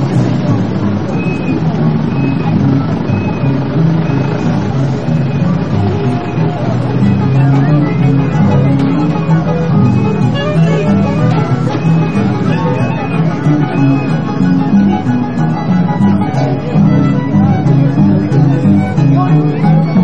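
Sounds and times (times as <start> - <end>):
folk dance band playing: 0.0 - 20.0
harp: 0.0 - 20.0
repeated bass notes: 0.0 - 20.0
saxophones playing melody: 0.0 - 20.0.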